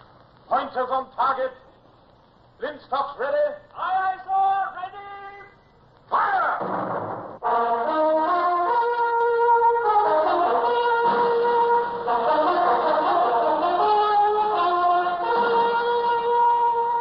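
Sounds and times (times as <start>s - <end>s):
sudden noisy blast: 6.3s - 7.6s
orchestral music with brass melody: 7.4s - 17.0s.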